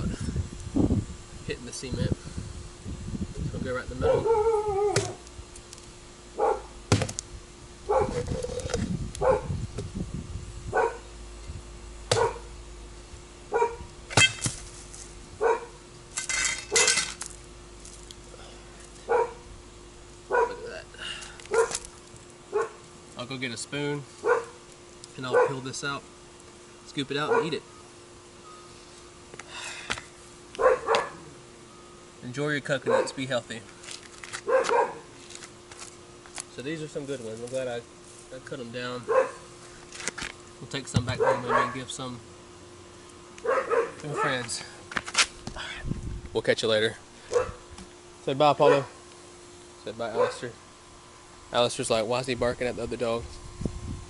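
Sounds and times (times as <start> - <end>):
dog barking: 4.0 - 5.2, 6.4 - 6.7, 7.9 - 8.6, 9.2 - 9.5, 10.8 - 11.1, 12.1 - 12.5, 13.5 - 13.9, 15.4 - 15.8, 19.1 - 19.4, 20.3 - 20.7, 21.5 - 21.8, 22.5 - 22.8, 24.2 - 24.6, 25.3 - 25.6, 27.2 - 27.6, 30.6 - 31.3, 32.8 - 33.2, 34.4 - 35.1, 39.1 - 39.5, 41.1 - 41.9, 43.4 - 44.4, 47.3 - 47.6, 48.6 - 49.0, 50.1 - 50.5
machete striking coconut: 4.9 - 5.2, 6.9 - 7.2, 12.1 - 12.4, 14.1 - 14.7.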